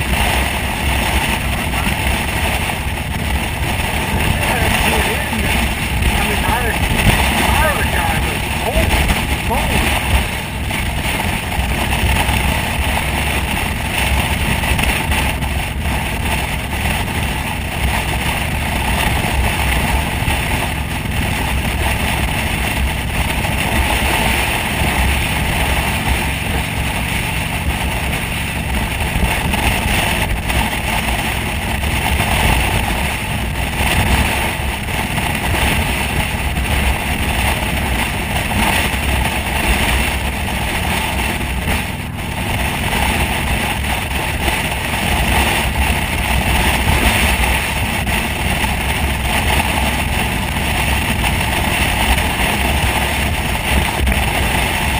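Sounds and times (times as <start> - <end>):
motorcycle engine and tyres: 0.0 - 54.9
wind buffeting microphone: 0.0 - 54.9.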